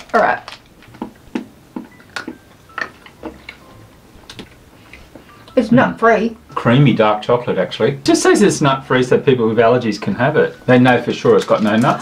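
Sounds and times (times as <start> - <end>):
chocolate crunching clicks: 0.0 - 3.6.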